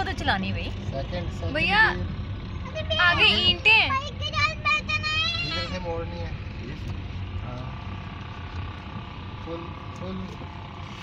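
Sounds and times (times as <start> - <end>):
car engine rumble: 0.0 - 11.0
road noise: 0.0 - 11.0.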